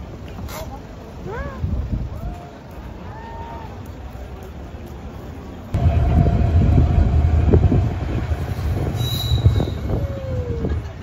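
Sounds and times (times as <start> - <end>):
train rumbling past: 5.8 - 11.0
train wheel squeal: 8.4 - 10.2.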